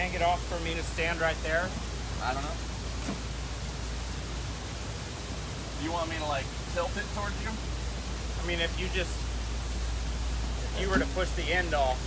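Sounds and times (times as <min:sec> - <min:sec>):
steady rushing noise: 0:00.0 - 0:12.0.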